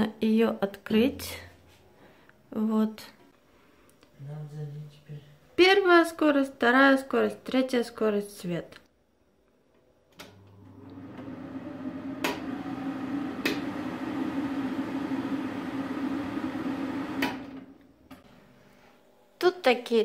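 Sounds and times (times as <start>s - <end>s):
extractor fan hum: 10.2s - 18.0s.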